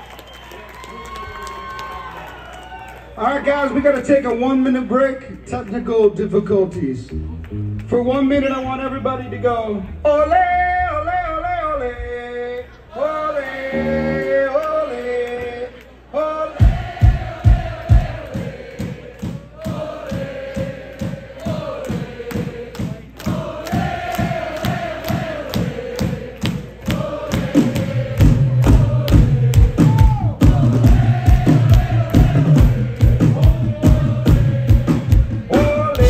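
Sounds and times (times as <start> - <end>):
live band music: 7.0 - 10.6, 27.1 - 36.0
heavy bass line: 7.0 - 12.5
steady drum beat: 16.6 - 36.0.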